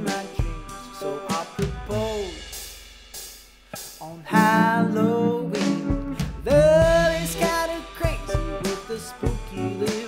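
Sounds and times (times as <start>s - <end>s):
person singing: 0.0s - 2.5s, 3.8s - 10.0s
drums: 0.0s - 10.0s.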